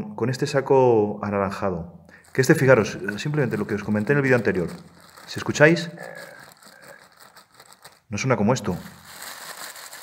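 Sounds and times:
plastic sheet rustling and crinkling: 0:02.2 - 0:10.0.

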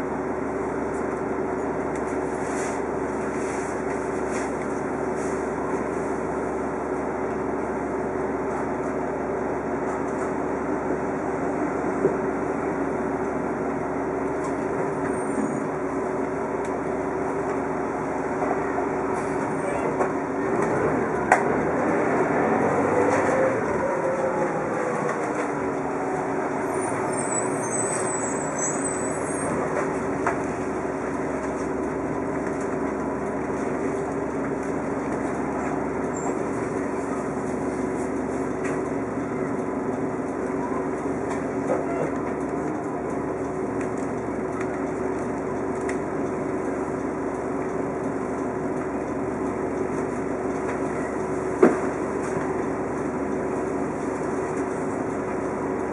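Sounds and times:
bus engine humming: 0:00.0 - 0:55.9.

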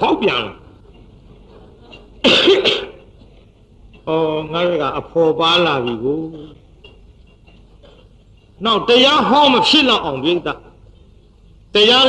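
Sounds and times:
man coughing: 0:02.2 - 0:03.0.

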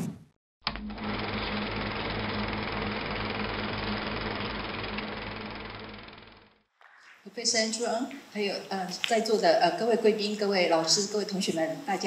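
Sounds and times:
film projector clatter: 0:00.7 - 0:06.6.

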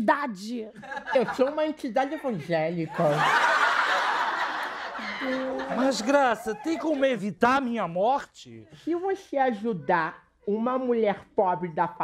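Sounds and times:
audience laughter: 0:02.9 - 0:07.1.

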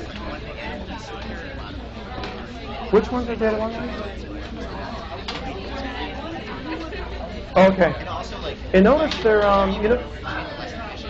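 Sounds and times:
indistinct voices talking quietly: 0:00.0 - 0:11.0.

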